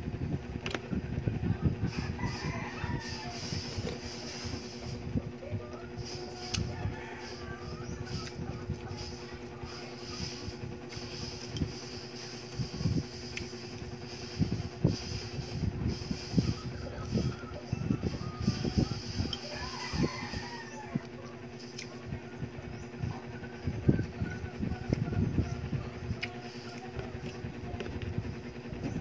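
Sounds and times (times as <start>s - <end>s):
steady background hum: 0.0s - 29.0s.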